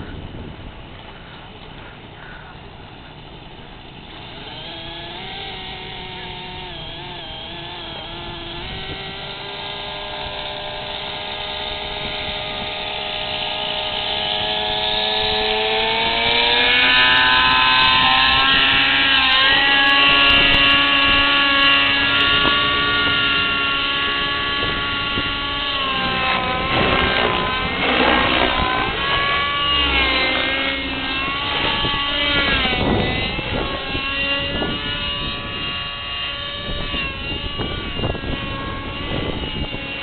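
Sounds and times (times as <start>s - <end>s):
model helicopter rotor whine: 0.0s - 40.0s.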